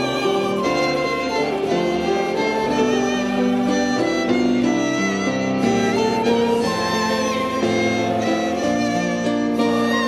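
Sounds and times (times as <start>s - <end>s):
plucked string accompaniment: 0.0s - 10.0s
violin playing hymn tune: 0.0s - 10.0s.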